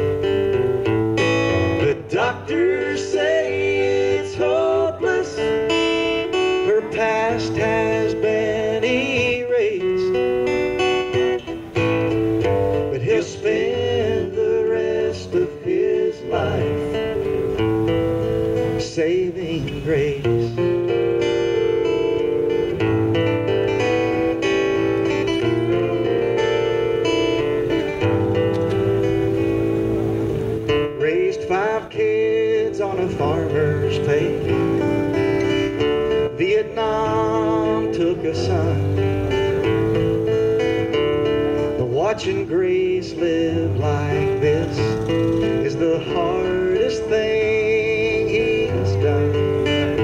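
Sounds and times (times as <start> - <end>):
acoustic guitars playing: 0.0 - 50.0.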